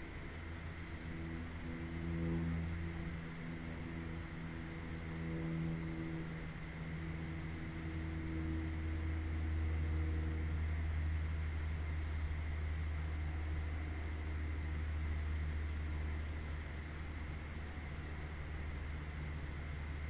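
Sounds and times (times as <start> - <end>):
low hum and hiss: 0.0 - 20.0.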